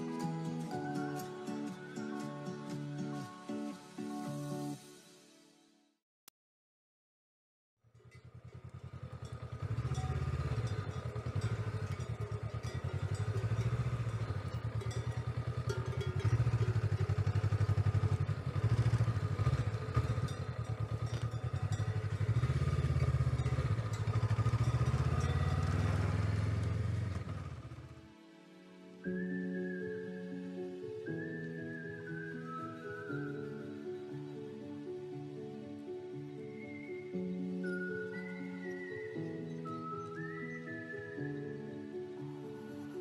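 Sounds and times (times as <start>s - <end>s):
motorcycle engine revving: 7.9s - 28.1s.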